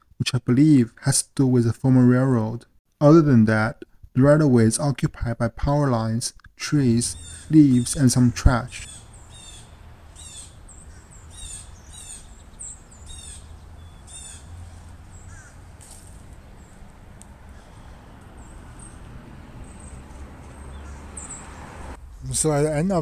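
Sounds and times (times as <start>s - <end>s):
birds calling harshly: 6.6s - 22.0s.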